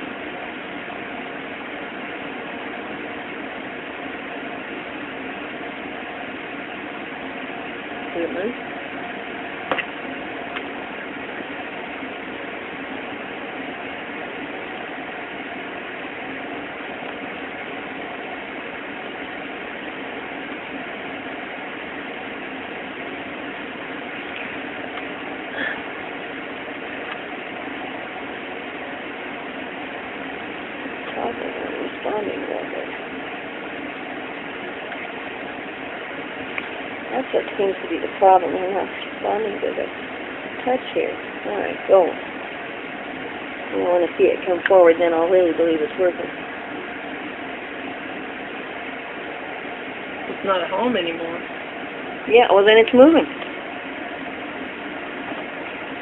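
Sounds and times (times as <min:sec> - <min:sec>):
machine hum: 0:00.0 - 0:56.0.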